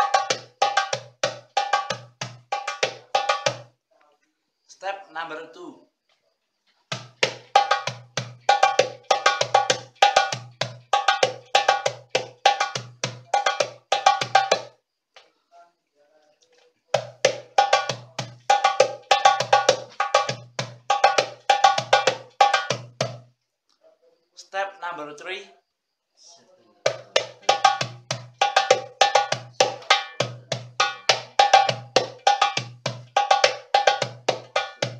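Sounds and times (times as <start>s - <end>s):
darbuka hand drum rhythm: 0.0s - 3.7s, 6.9s - 14.8s, 16.9s - 23.3s, 26.8s - 34.9s.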